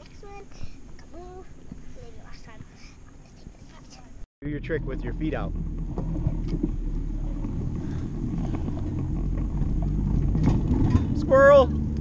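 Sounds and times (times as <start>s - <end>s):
wind buffeting microphone: 4.6s - 12.0s.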